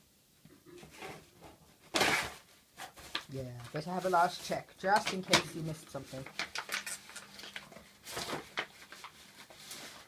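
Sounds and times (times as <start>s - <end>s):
plastic bag crinkling: 3.1s - 10.0s.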